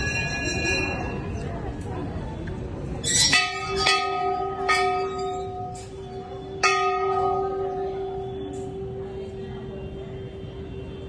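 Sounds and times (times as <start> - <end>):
temple bell ringing: 0.0 - 1.8, 3.0 - 11.0.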